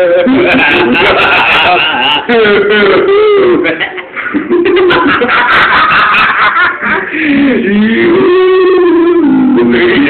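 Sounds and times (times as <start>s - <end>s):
men laughing and snickering: 0.0s - 10.0s.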